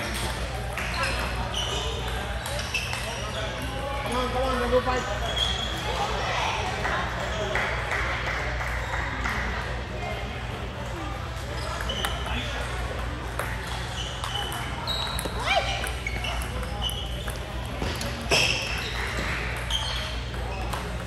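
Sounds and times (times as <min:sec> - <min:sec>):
table tennis balls clicking: 0:00.0 - 0:03.3, 0:11.7 - 0:21.0.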